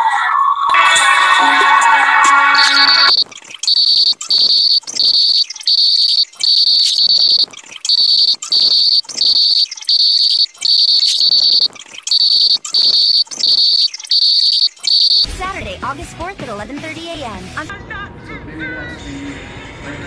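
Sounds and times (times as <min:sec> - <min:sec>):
high-pitched chirping tone: 0:02.4 - 0:15.3.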